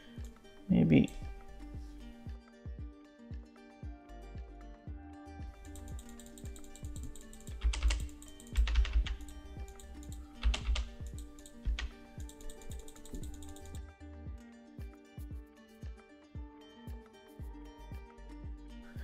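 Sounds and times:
soft background music: 0.0 - 19.0
computer keyboard clicking: 5.6 - 13.8.

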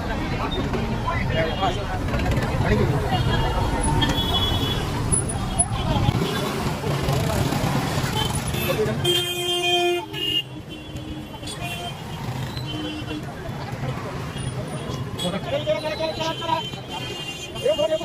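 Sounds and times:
crowd noise: 0.0 - 18.0
street traffic: 0.0 - 18.0.

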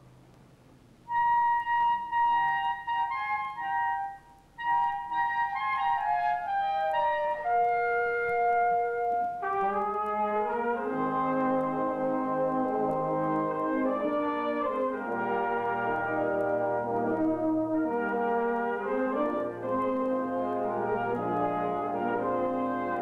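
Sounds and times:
low brass chords: 1.1 - 23.0
wind band playing: 1.1 - 23.0.

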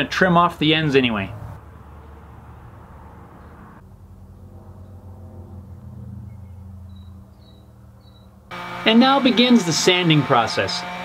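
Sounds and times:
low motor hum: 1.3 - 11.0
faint bird chirps: 5.7 - 8.3.

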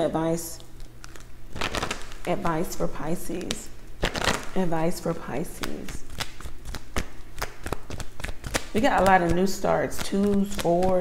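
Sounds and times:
cards being shuffled: 0.6 - 11.0.

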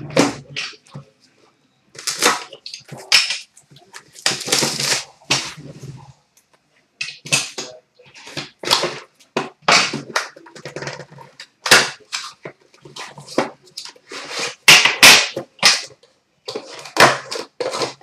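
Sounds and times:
plastic shrink-wrap tearing: 4.0 - 5.3.

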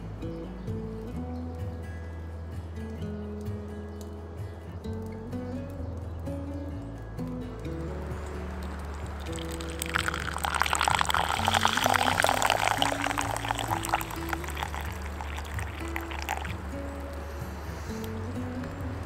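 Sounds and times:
background music: 0.0 - 19.0
coffee pouring into a cup: 9.1 - 16.6.

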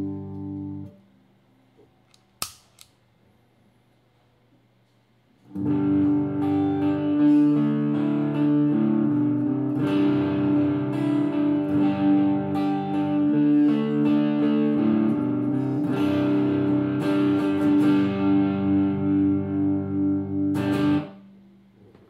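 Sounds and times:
clean electric guitar chord: 0.0 - 1.0, 5.5 - 21.5
distorted electric guitar riffs: 0.0 - 1.0, 5.5 - 21.4.

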